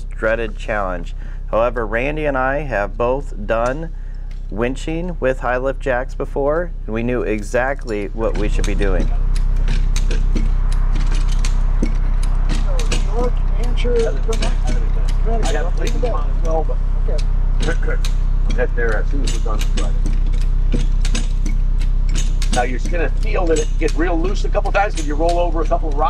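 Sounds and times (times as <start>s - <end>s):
steady low hum: 0.0s - 26.0s
jack ratchet clicking: 7.3s - 26.0s.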